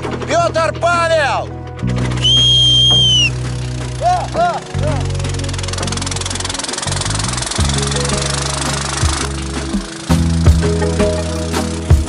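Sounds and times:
low hum: 0.0s - 12.0s
loud long whistle: 2.2s - 3.4s.

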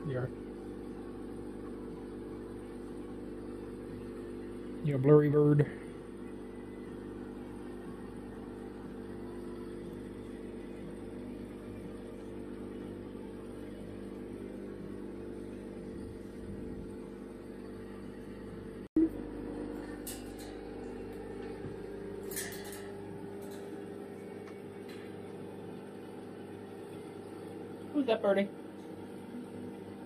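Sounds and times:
appliance electrical hum: 0.0s - 30.0s.

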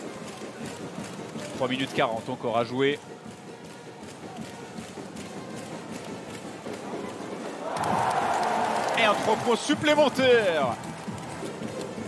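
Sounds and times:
crowd cheering: 7.5s - 12.0s.

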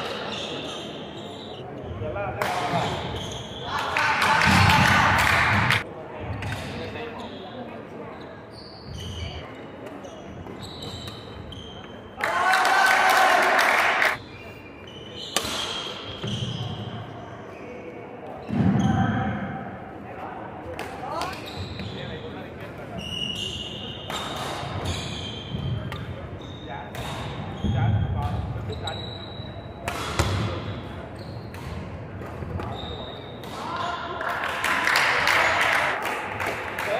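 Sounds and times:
shoe squeaks: 0.0s - 2.1s, 2.7s - 3.9s, 7.0s - 12.1s, 14.2s - 19.2s, 21.0s - 31.8s, 32.5s - 33.8s.

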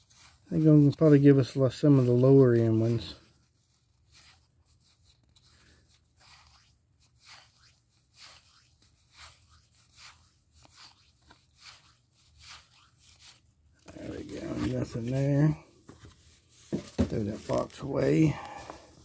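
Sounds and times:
cardboard cards scraping: 0.0s - 19.0s.

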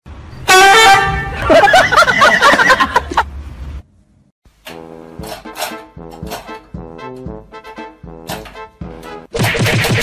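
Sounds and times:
loud horn honk: 0.4s - 1.4s.

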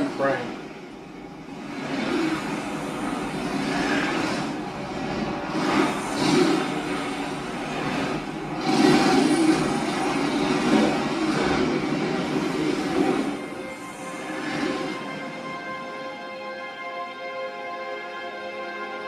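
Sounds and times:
explosion and fire rumble: 1.6s - 13.8s.

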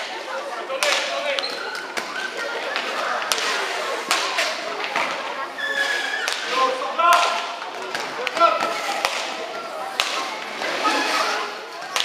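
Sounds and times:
ball hitting boards: 6.3s - 10.4s
sticks striking ball: 7.1s - 9.3s, 10.0s - 10.2s.

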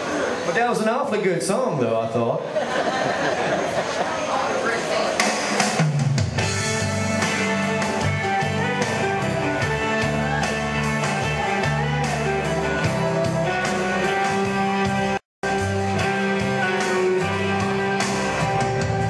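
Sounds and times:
country song on guitar bass and drums: 5.7s - 19.0s.

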